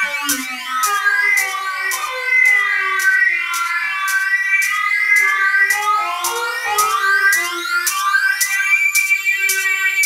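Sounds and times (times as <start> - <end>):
electronic music with synthesizer: 0.0 - 10.0.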